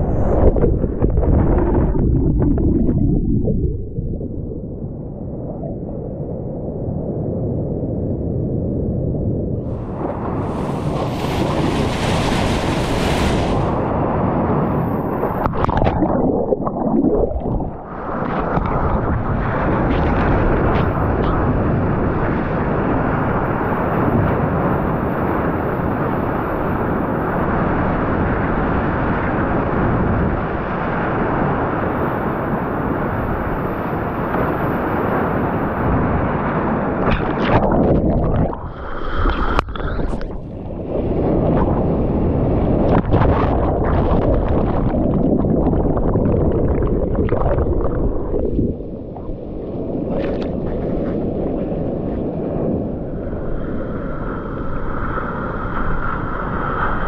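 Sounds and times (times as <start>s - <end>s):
wind noise on microphone: 0.0s - 57.0s.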